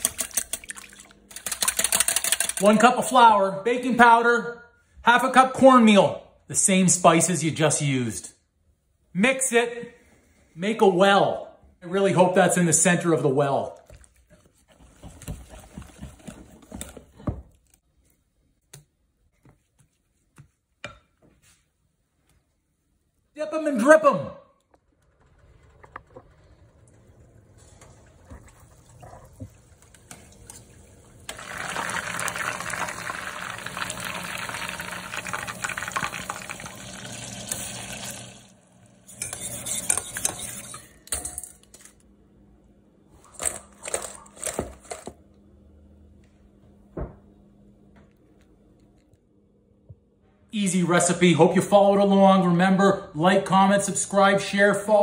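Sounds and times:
hot oil sizzling and crackling: 0:31.3 - 0:38.6.

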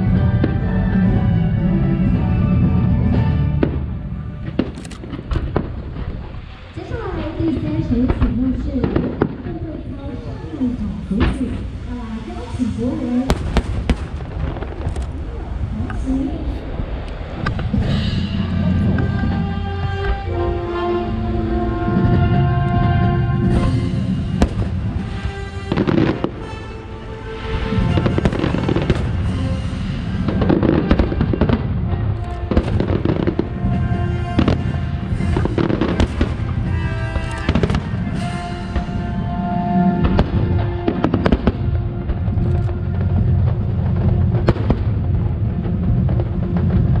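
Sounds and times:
music playing: 0:00.0 - 0:05.7, 0:17.6 - 0:47.0
fireworks bursting: 0:03.0 - 0:47.0.

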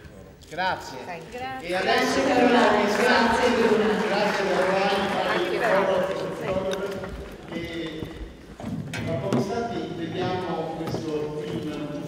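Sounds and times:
people talking: 0:01.1 - 0:08.1, 0:09.0 - 0:12.0.

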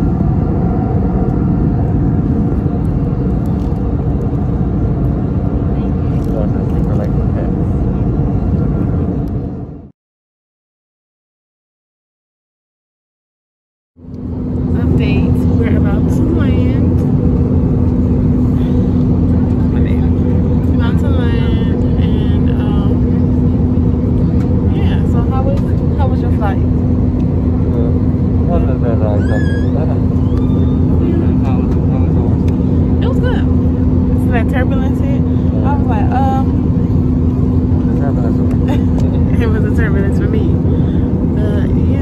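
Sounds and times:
jet cabin roar: 0:00.0 - 0:10.0, 0:14.0 - 0:42.0
faint voices: 0:27.6 - 0:30.1.

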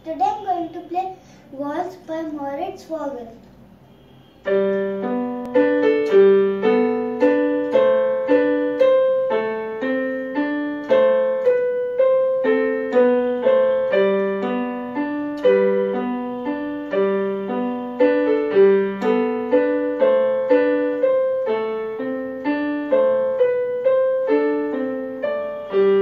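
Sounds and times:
electronic keyboard waltz: 0:04.5 - 0:26.0.

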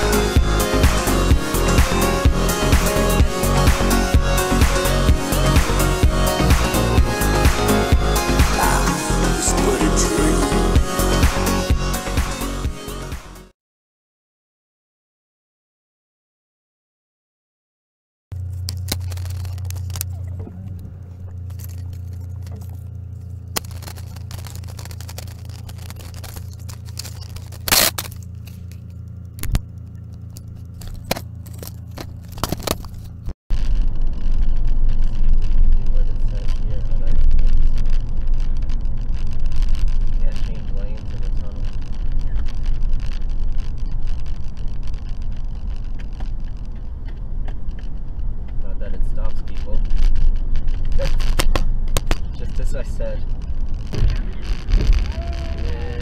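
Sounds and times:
car engine hum: 0:00.0 - 0:13.1, 0:18.4 - 0:56.0
road and tyre noise in tunnel: 0:18.4 - 0:53.9.

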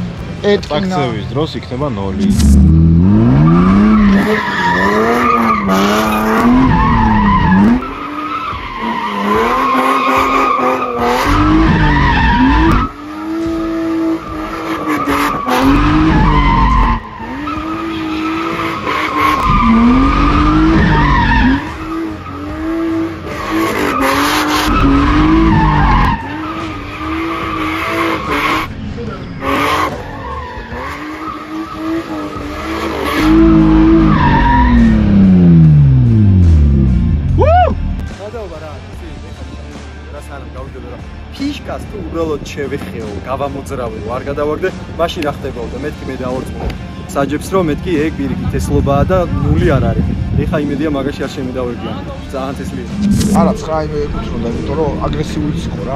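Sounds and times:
car engine revving: 0:00.0 - 0:38.1, 0:47.3 - 0:55.9
tyres skidding on asphalt: 0:00.0 - 0:38.6.

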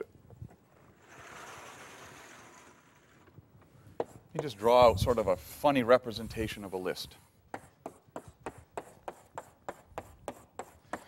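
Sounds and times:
blackboard panel sliding: 0:00.7 - 0:03.5.

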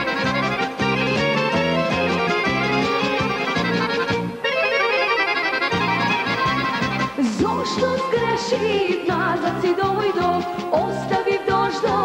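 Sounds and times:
pulsing bass line: 0:00.0 - 0:04.4
clarinet: 0:00.0 - 0:08.3
flute: 0:00.0 - 0:08.8
accordion: 0:00.0 - 0:12.0.

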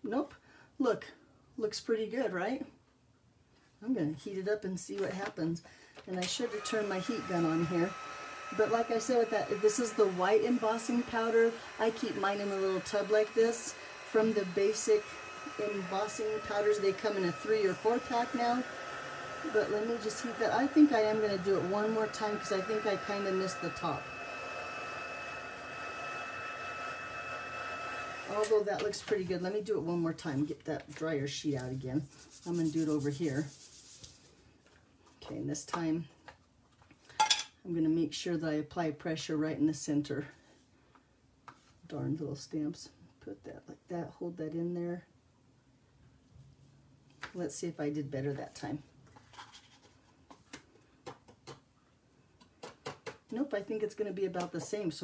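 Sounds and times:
heat gun whining: 0:06.2 - 0:29.0.

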